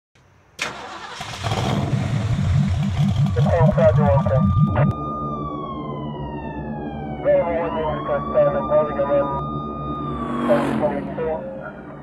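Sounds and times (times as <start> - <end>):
car engine starting and running: 0.5 - 12.0.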